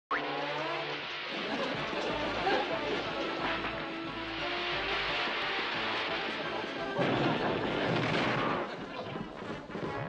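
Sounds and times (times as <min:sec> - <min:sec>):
background music: 0:00.1 - 0:10.0.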